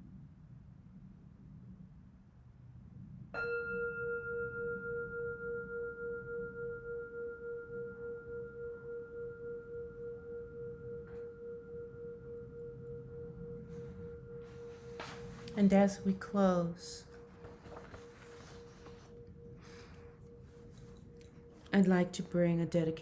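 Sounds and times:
singing bowl ringing: 0:03.4 - 0:23.0.

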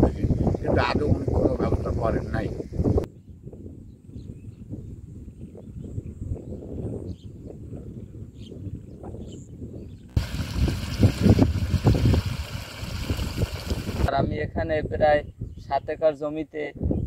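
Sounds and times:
wind buffeting microphone: 0:00.0 - 0:15.8, 0:16.8 - 0:17.0.

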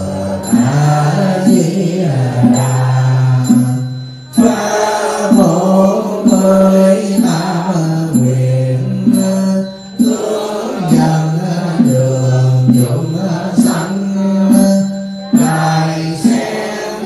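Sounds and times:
monk chanting through microphone: 0:00.0 - 0:17.0.

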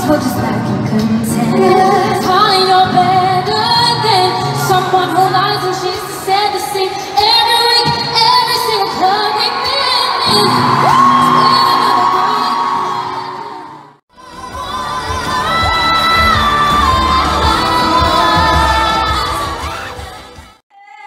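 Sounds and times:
crowd: 0:00.0 - 0:21.0
women singing pop vocals: 0:00.0 - 0:21.0.

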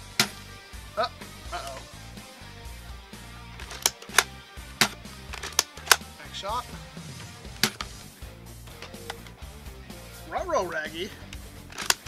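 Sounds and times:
background music: 0:00.0 - 0:12.0
foam dart blaster click: 0:00.2 - 0:00.4.

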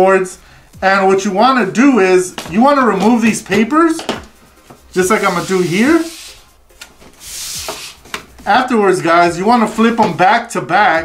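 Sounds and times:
paper and clipboards scraping on table: 0:04.7 - 0:08.4, 0:09.6 - 0:10.3.

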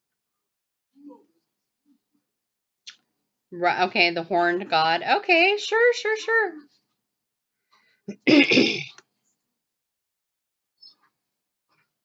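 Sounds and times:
man clearing throat: 0:08.1 - 0:09.0.

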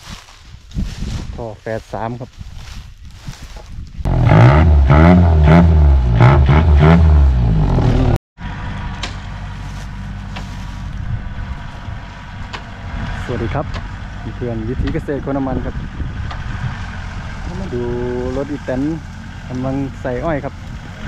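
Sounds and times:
truck engine revving: 0:04.1 - 0:21.0
truck engine idling: 0:08.4 - 0:21.0.

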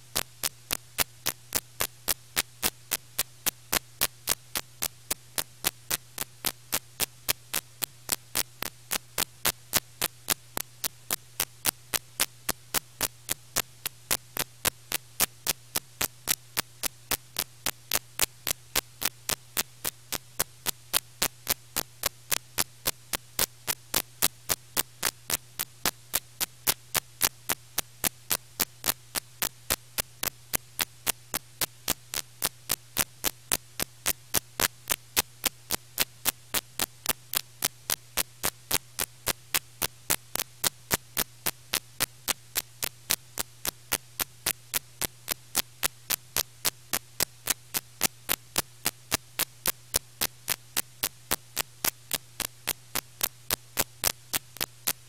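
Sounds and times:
sharp static clicks: 0:00.0 - 0:55.0.

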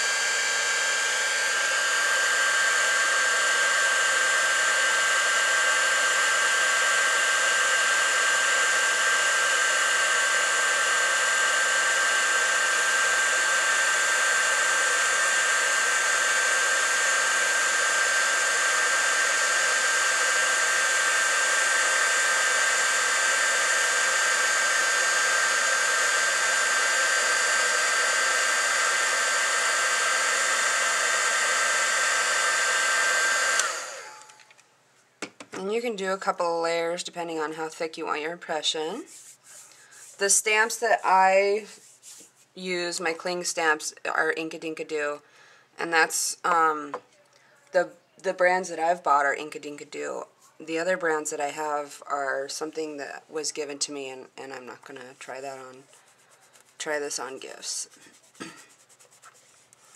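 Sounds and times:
heat gun running: 0:00.0 - 0:34.6, 0:35.2 - 0:42.3, 0:50.8 - 0:59.9.

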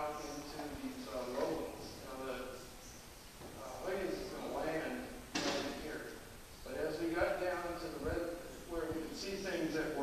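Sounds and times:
distant man lecturing: 0:00.0 - 0:02.7, 0:03.5 - 0:10.0.

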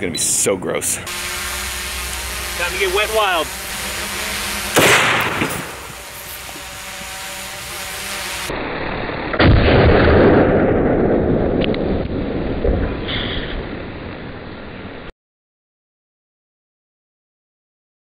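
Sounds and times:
rifle firing: 0:04.7 - 0:05.9.

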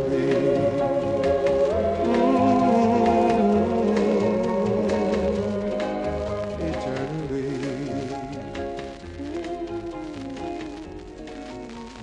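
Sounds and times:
backing voices holding notes: 0:00.0 - 0:12.0
bass and drums: 0:00.0 - 0:12.0.

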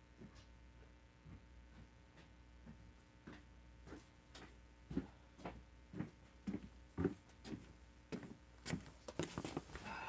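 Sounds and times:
footsteps on a hard floor: 0:01.2 - 0:09.8.

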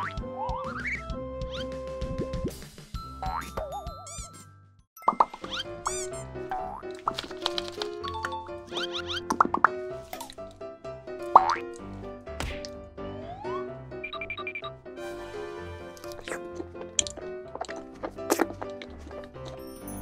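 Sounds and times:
cartoonish background music: 0:00.0 - 0:20.0
bouncy tune: 0:03.0 - 0:06.8.

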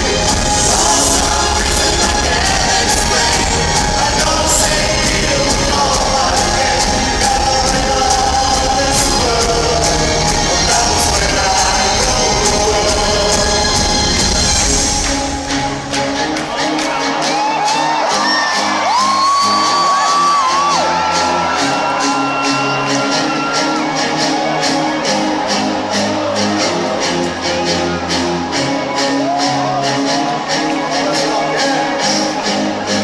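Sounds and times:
crowd whooping and cheering: 0:00.0 - 0:33.0
live band music over sound system: 0:00.0 - 0:33.0.

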